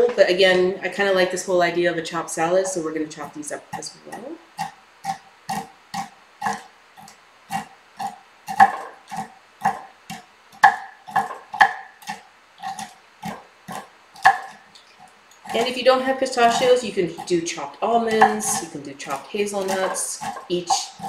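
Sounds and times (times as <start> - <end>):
person speaking: 0.0 - 4.4, 15.5 - 21.0
knife chopping nuts on wood: 8.5 - 14.6, 16.4 - 21.0.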